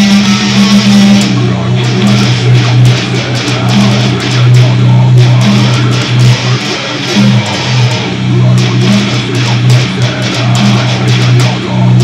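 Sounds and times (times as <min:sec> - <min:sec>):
electric guitar riff: 0:00.0 - 0:12.0.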